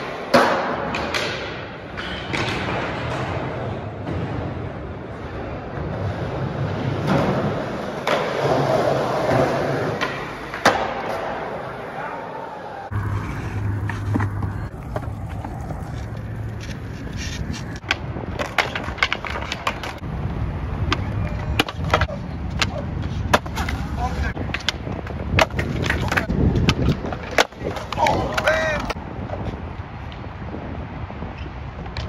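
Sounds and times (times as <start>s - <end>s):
skateboard clacking on ground: 0.0s - 11.8s, 12.9s - 20.0s, 20.7s - 30.2s
skateboard wheels rolling on concrete: 0.0s - 32.0s.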